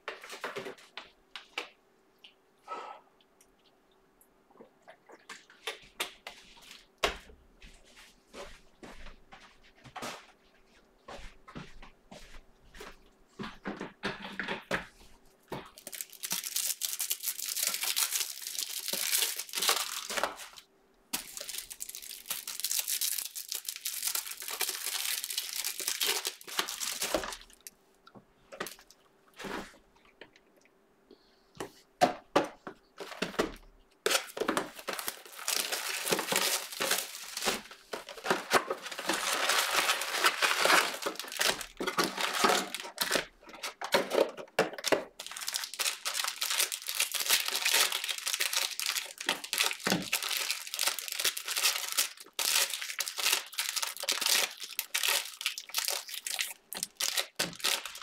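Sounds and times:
plastic crinkling and tearing: 15.7s - 20.6s, 21.2s - 27.7s, 34.0s - 58.0s.

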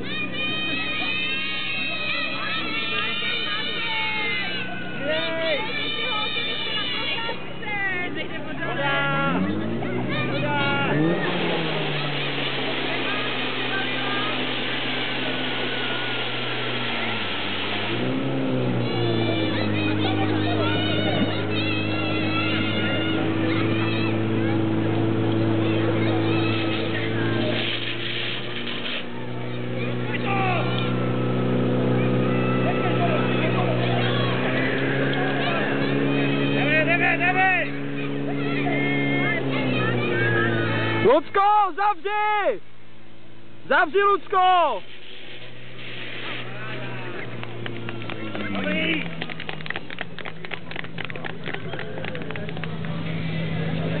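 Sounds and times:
people shouting: 0.0s - 27.7s, 29.2s - 42.6s
pump engine droning: 0.0s - 54.0s
voices: 0.0s - 54.0s.

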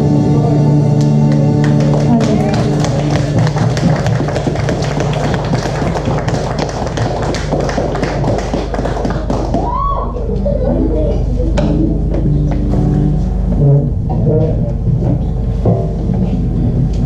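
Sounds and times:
music with low drone: 0.0s - 17.0s.

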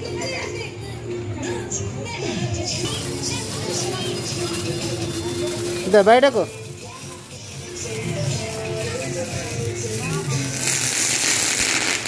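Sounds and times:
firework fountain hissing and crackling: 2.9s - 12.0s.

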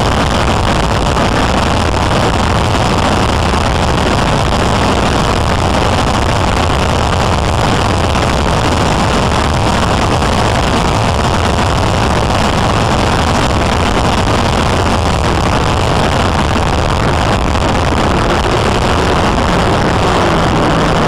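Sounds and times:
road and engine noise in car cabin: 0.0s - 21.0s.

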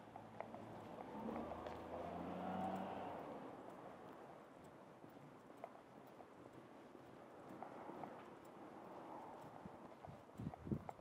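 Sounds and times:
vehicle engine passing by: 1.1s - 3.4s.

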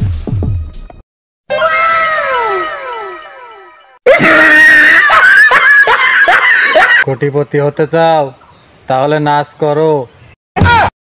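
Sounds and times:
shrill pulsing scream: 1.5s - 5.6s.

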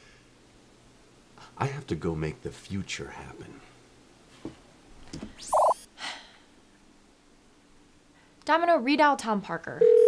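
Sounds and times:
electronic call-ended sweep and beep: 5.4s - 5.8s.

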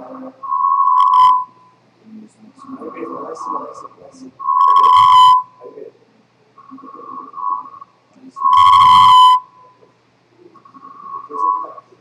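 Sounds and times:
loud electronic beep: 0.0s - 1.8s, 2.7s - 3.8s, 4.4s - 5.6s, 6.6s - 9.8s, 10.6s - 11.9s.

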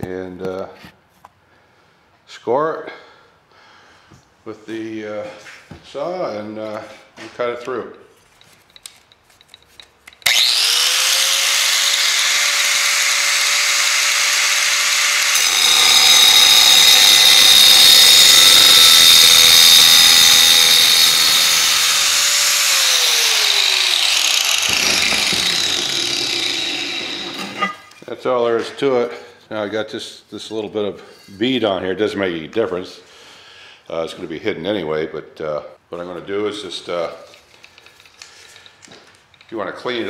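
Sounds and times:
angle grinder running: 10.2s - 28.0s
grinder cutting tile: 10.2s - 28.0s.

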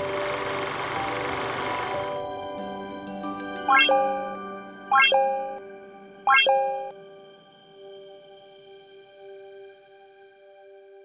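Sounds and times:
rising chime notes with bell ding: 3.7s - 5.6s, 6.3s - 6.9s.

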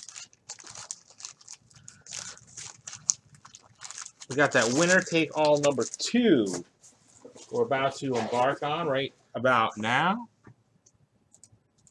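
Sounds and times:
wax paper wrapper crinkling: 0.0s - 6.5s.

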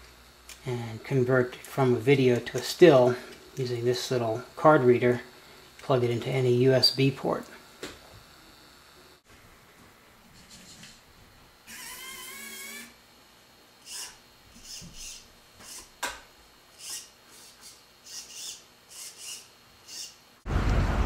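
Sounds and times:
small electric motors whining: 11.6s - 13.1s, 13.8s - 16.1s, 16.7s - 20.4s.

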